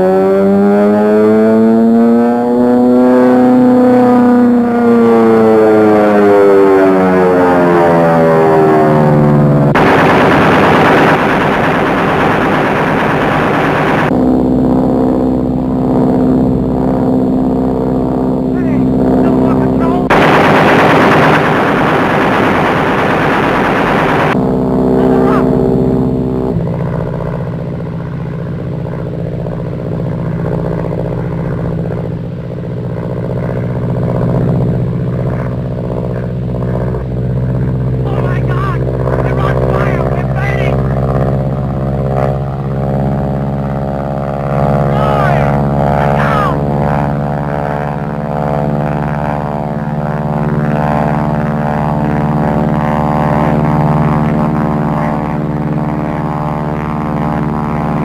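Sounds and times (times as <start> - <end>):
biplane engines droning: 0.0 - 58.0
machine-gun fire: 9.8 - 14.1, 20.1 - 24.4.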